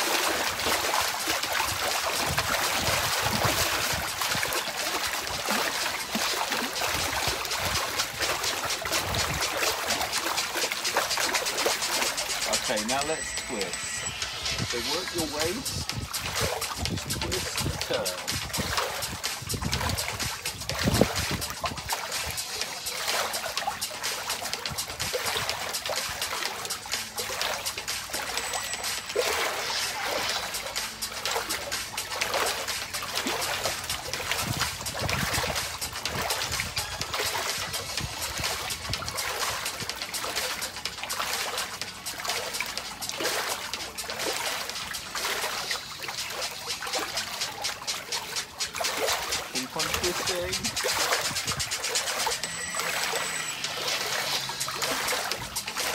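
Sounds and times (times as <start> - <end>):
water splashing in paddling pool: 0.0 - 55.9.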